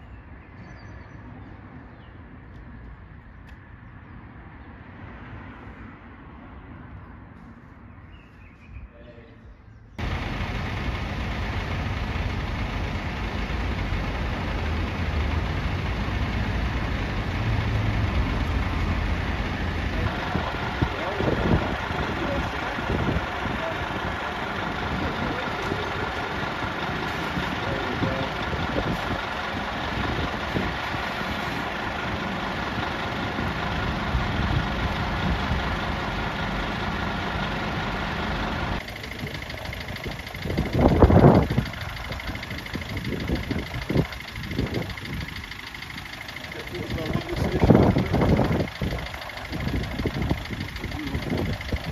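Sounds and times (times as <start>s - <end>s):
diesel engines idling: 10.0s - 51.9s.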